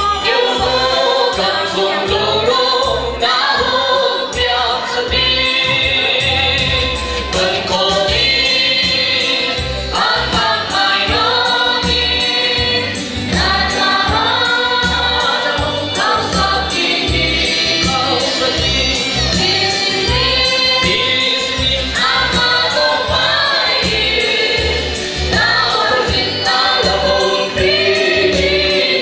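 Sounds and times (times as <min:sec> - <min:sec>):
amplified instrumental backing: 0:00.0 - 0:29.0
group singing gospel song: 0:00.0 - 0:29.0.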